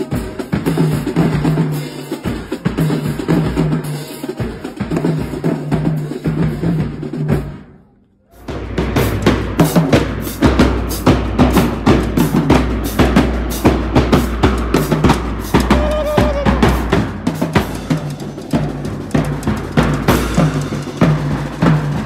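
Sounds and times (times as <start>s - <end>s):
marching bass drums: 0.0s - 7.7s, 8.4s - 22.0s
drumline playing fast cadence: 0.0s - 7.8s, 8.4s - 22.0s.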